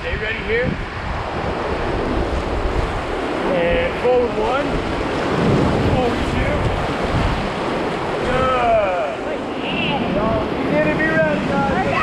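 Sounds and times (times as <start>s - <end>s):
whitewater rapids rushing: 1.2s - 12.0s.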